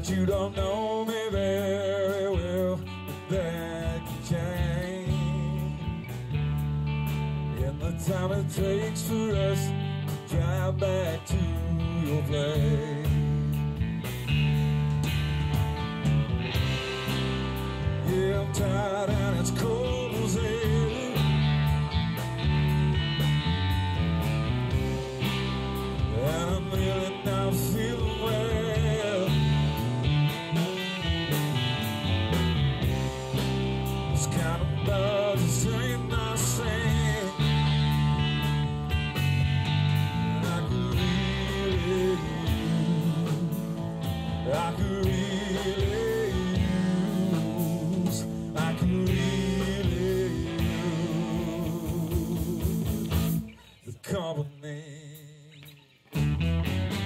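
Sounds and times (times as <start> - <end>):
live rock band playing: 0.0 - 53.9, 55.7 - 57.0.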